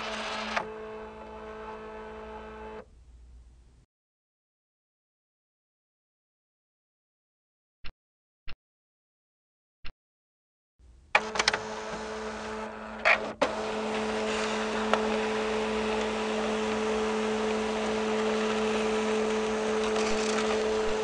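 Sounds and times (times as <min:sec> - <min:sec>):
mechanical hum with droning tones: 0:00.0 - 0:03.8, 0:10.8 - 0:21.0.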